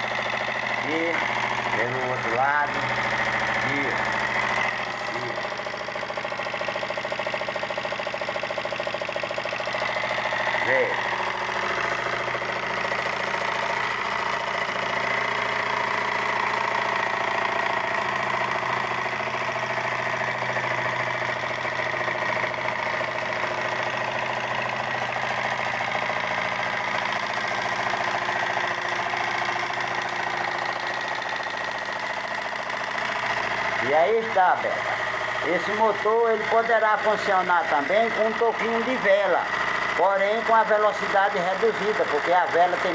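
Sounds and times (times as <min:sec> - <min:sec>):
small engine mechanical hum: 0:00.0 - 0:42.9.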